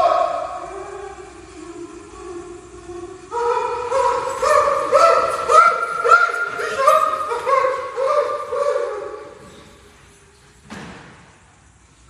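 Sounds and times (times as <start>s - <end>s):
thump: 10.6s - 11.3s.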